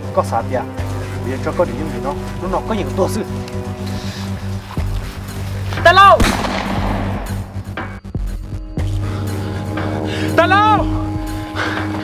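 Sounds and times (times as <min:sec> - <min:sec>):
handgun shot: 0:06.2 - 0:07.5.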